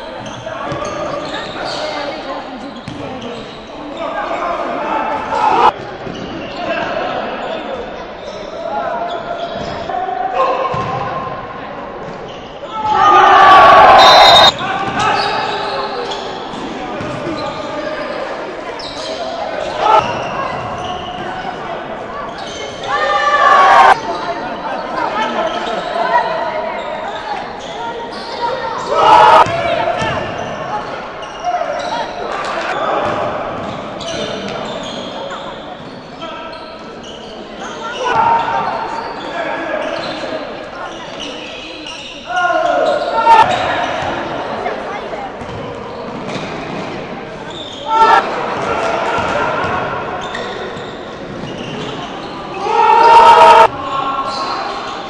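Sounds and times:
basketball bouncing on court: 2.8s - 3.2s, 10.7s - 11.0s, 45.4s - 46.8s
loud shouts: 4.0s - 5.8s, 8.6s - 11.3s, 12.6s - 16.2s, 19.3s - 21.4s, 22.4s - 24.2s, 24.8s - 33.6s, 37.6s - 40.0s, 42.2s - 44.7s, 47.5s - 50.4s, 52.4s - 54.9s
players calling out: 12.6s - 46.6s, 47.4s - 55.0s.

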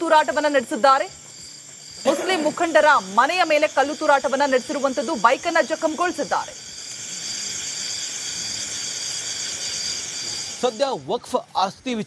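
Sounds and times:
insects chirping: 0.0s - 12.0s
hiss: 2.4s - 11.0s.

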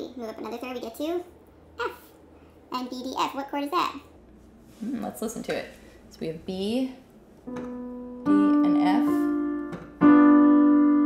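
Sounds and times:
keyboard piano chord: 7.5s - 11.0s.

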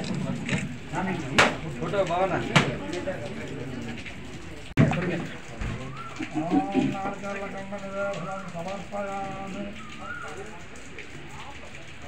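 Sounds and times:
steady crackling noise: 0.0s - 12.0s.

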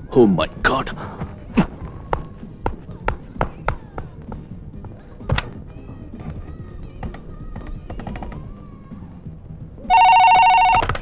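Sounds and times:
electronic telephone ringing: 9.9s - 11.0s.

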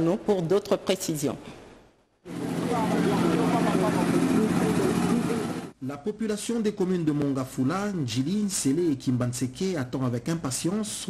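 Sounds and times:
vehicle engines humming: 2.3s - 5.8s
people chattering: 2.4s - 5.7s.

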